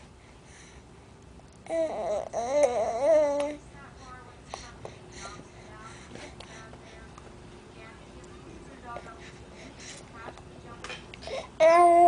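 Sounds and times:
baby whining: 1.7 - 3.6, 11.2 - 12.0.

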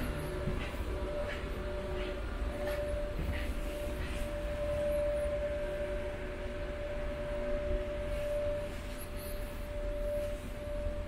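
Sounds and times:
low machinery rumble: 0.0 - 11.0
mid-pitched whine: 0.0 - 11.0.

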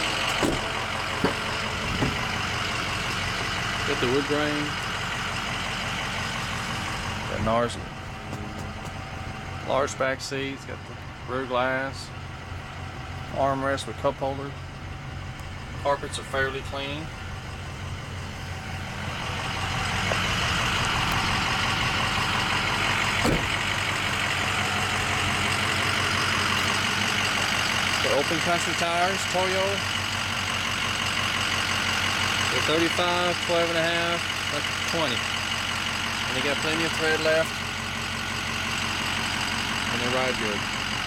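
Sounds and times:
diesel engine idling: 0.0 - 41.0.

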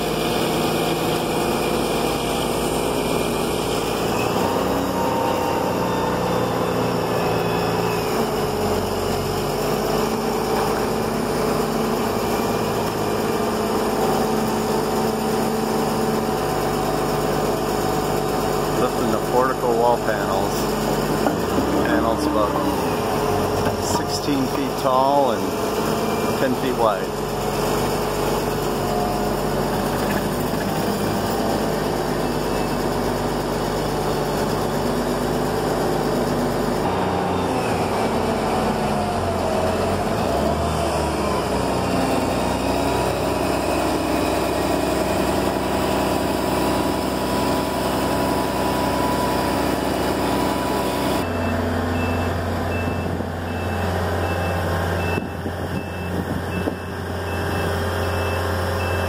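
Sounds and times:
heavy machinery engine running: 0.0 - 59.0
backup alarm beeping: 4.0 - 8.8, 51.2 - 59.0.

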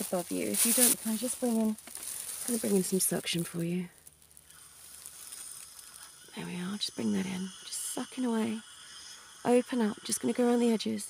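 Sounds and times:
plastic apron rustling: 0.0 - 5.6.

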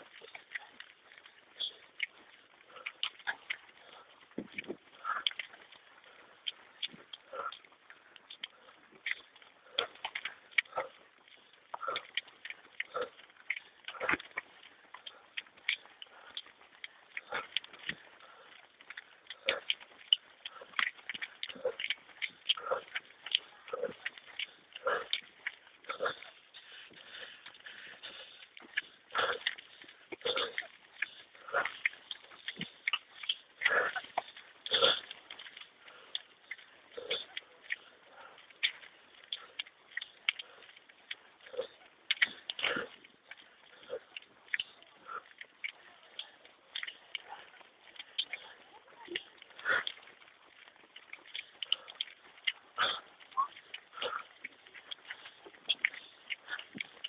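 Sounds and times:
runner breathing: 0.0 - 57.0.

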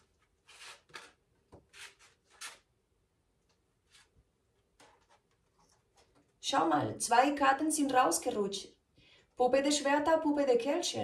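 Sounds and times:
cards being shuffled: 0.4 - 2.6.

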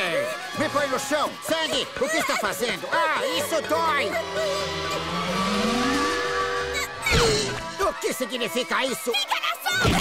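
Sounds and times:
sustained steady tones: 3.5 - 7.8
rising whine: 4.1 - 7.8.

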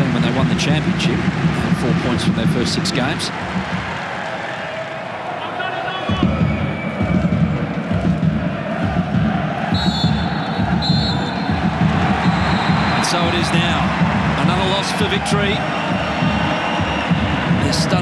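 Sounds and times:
stadium crowd noise: 0.0 - 18.0
referee whistle blasts: 9.8 - 11.5, 12.2 - 13.2.

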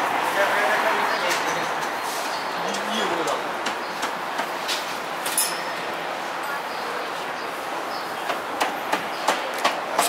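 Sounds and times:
street bustle: 0.0 - 10.0.

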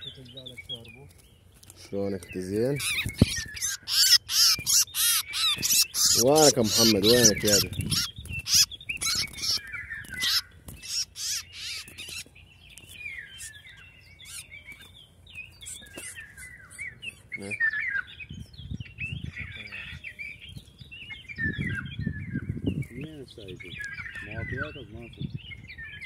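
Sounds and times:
small birds chirping: 0.0 - 26.0.

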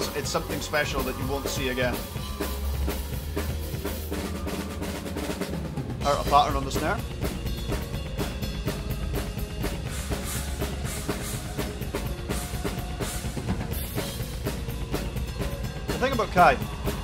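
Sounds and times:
bass drum and snare strokes: 0.0 - 17.0
symphonic metal band: 0.0 - 17.0.

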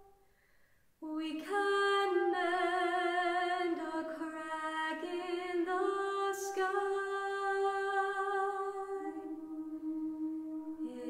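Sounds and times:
voice humming long note: 5.2 - 11.0.

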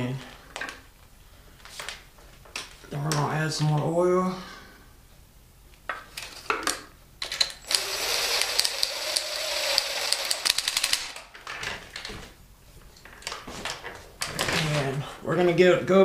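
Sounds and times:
impact driver rattling: 7.6 - 11.4.

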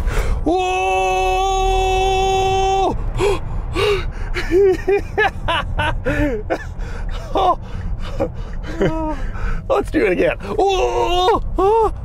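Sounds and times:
low rumble: 0.0 - 12.0
man yelping: 0.4 - 3.0, 7.2 - 7.6, 10.2 - 12.0
man gasping for breath: 6.0 - 9.7.

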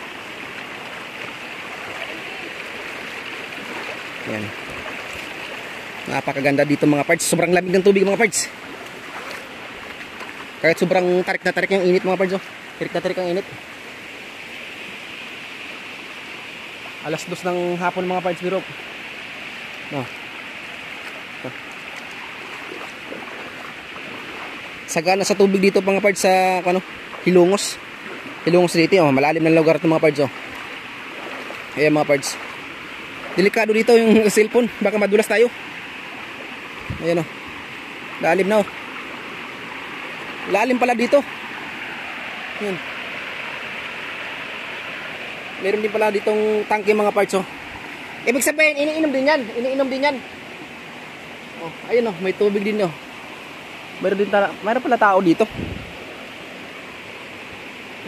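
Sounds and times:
stream water over rocks: 0.0 - 58.0.

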